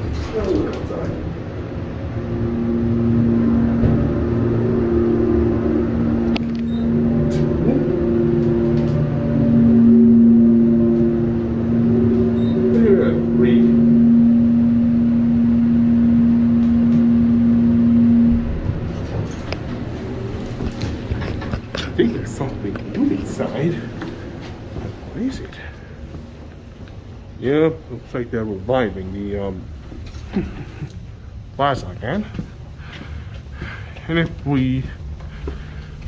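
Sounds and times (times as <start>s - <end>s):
elevator pump motor hum: 0.0s - 31.6s.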